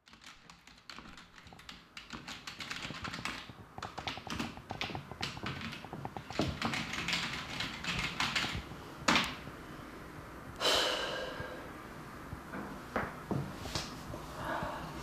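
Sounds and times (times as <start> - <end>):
typing on computer keyboard: 0.0 - 9.4.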